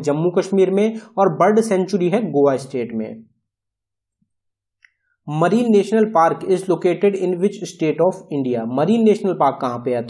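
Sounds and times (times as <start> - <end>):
man speaking: 0.0 - 3.3, 5.3 - 10.0.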